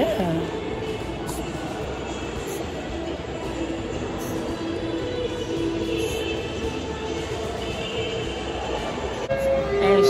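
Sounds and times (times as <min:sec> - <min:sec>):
background music: 0:00.0 - 0:10.0
shopping mall hum: 0:00.0 - 0:10.0.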